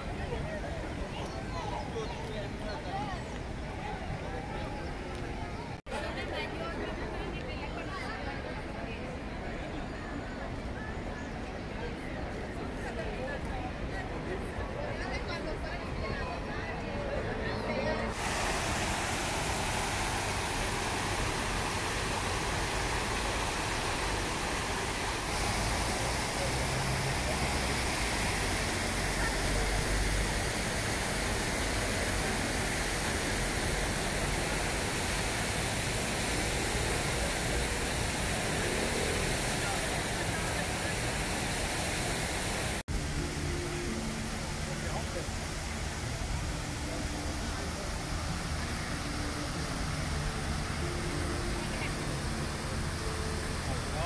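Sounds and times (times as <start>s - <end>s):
fountain water splashing: 0.0s - 9.8s, 11.4s - 54.0s
people's voices: 0.0s - 42.5s
low city traffic: 16.8s - 42.8s.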